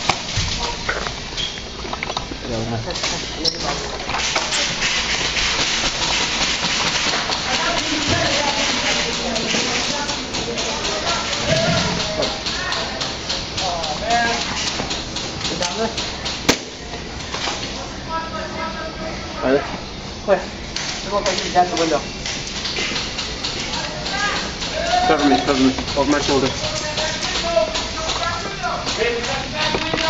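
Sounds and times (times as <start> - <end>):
people shouting: 11.1 - 12.9, 23.9 - 25.4
sharp crack: 16.4 - 16.8.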